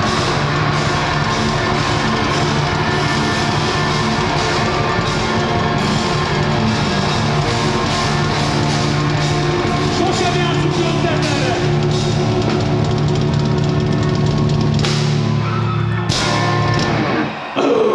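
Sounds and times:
live punk rock band: 0:00.0 - 0:17.6.

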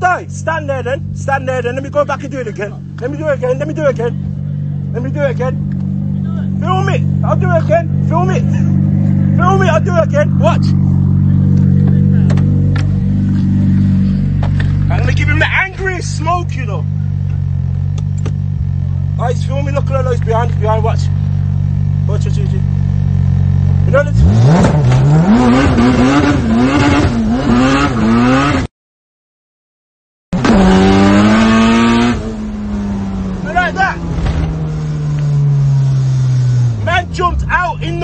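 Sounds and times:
car engine droning from cabin: 0:00.0 - 0:28.5, 0:30.4 - 0:38.0.

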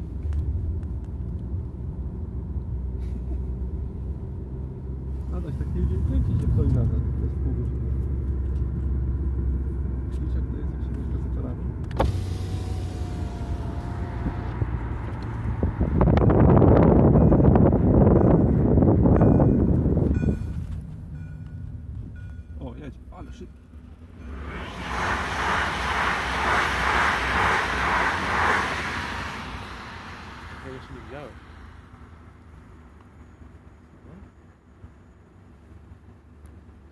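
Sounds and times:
car engine and road rumble: 0:00.0 - 0:36.9
level crossing warning bell: 0:17.1 - 0:23.6
loud rushing noise: 0:24.1 - 0:32.5.

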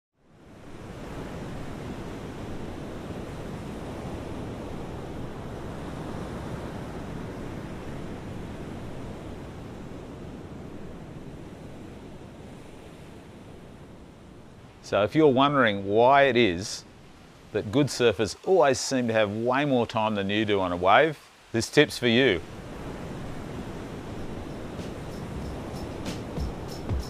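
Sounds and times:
ocean waves breaking: 0:00.3 - 0:27.0.

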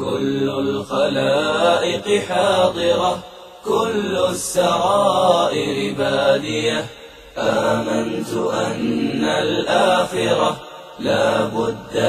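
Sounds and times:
devotional chant singing: 0:00.0 - 0:12.0.

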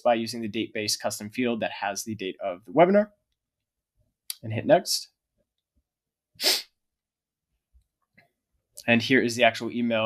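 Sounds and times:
short intake of breath: 0:06.4 - 0:06.7.

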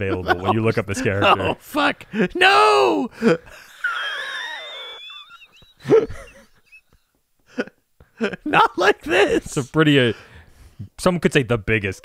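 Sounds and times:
person laughing: 0:00.0 - 0:01.6, 0:03.2 - 0:09.6.

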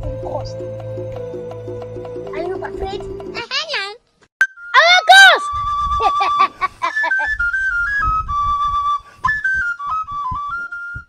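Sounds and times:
high whistle tune: 0:04.4 - 0:11.0.

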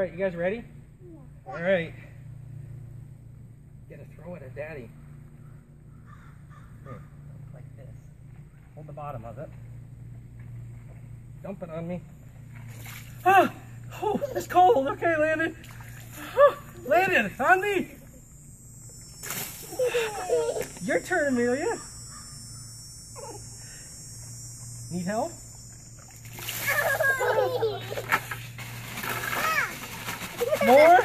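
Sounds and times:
steady low hum: 0:00.0 - 0:31.0
crow cawing: 0:05.4 - 0:07.3, 0:21.8 - 0:22.9
water splashing over head: 0:12.4 - 0:17.2, 0:17.9 - 0:22.2, 0:25.4 - 0:31.0
high-pitched cry: 0:19.6 - 0:20.8, 0:23.1 - 0:23.8, 0:26.5 - 0:28.0.

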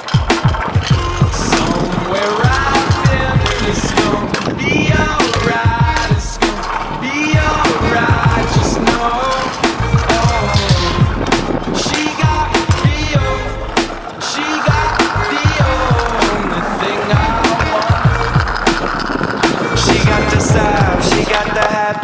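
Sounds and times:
scooter wheels rolling on concrete: 0:00.0 - 0:22.0
hip-hop song with sung vocal: 0:00.6 - 0:22.0.

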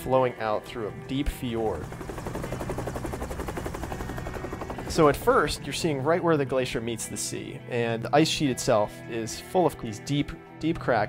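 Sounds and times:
helicopter rotor beating: 0:00.0 - 0:07.2.

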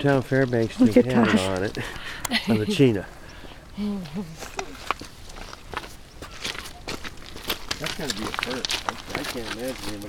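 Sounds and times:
footsteps crunching on gravel: 0:04.4 - 0:10.0.

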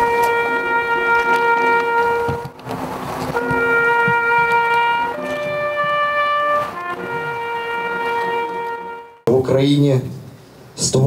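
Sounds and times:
solo brass instrument playing: 0:00.0 - 0:09.3.

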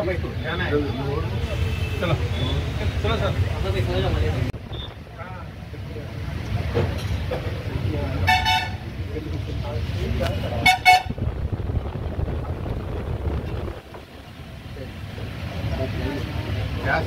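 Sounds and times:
vehicle horn honks: 0:01.4 - 0:02.7, 0:08.3 - 0:08.8, 0:10.6 - 0:11.2
low rumble: 0:11.0 - 0:14.5.

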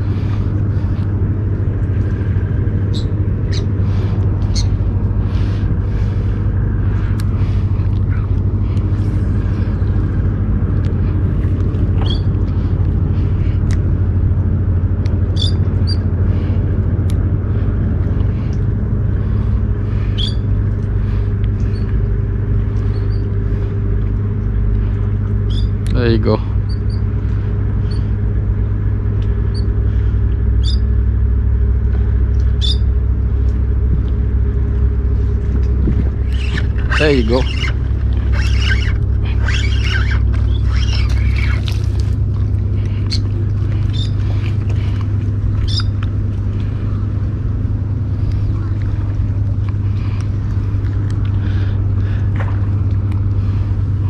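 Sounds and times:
low motor rumble and hum: 0:00.0 - 0:54.0
rising and falling call: 0:36.1 - 0:42.0.

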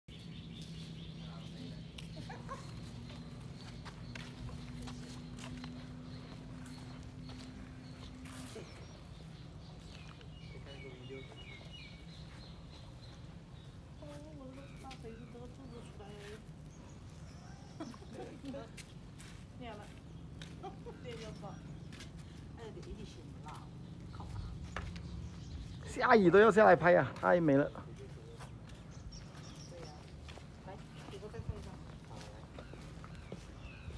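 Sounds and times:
bird chirps: 0:00.1 - 0:18.8, 0:23.4 - 0:33.9.

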